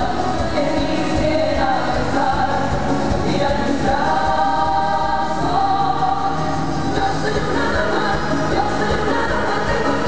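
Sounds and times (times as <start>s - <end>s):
women singing together: 0.0s - 10.0s.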